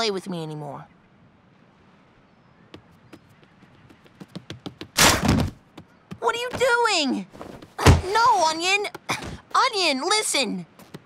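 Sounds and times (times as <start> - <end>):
body crashing through screen door: 5.0 - 5.6.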